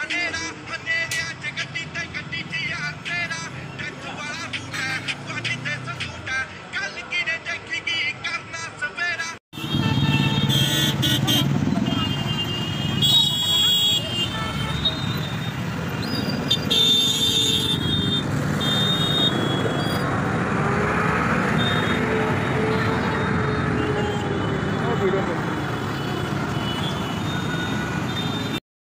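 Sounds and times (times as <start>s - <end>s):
traffic rumble: 0.0s - 28.6s.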